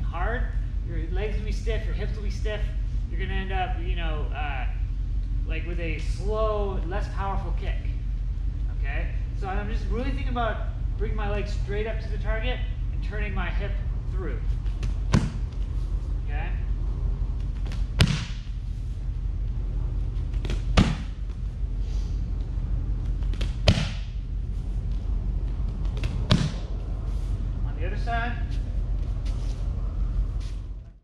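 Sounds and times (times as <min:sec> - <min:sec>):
kicks slapping on pads: 0:14.7 - 0:15.5, 0:17.6 - 0:18.5, 0:20.3 - 0:21.4, 0:23.2 - 0:24.2, 0:25.8 - 0:26.7.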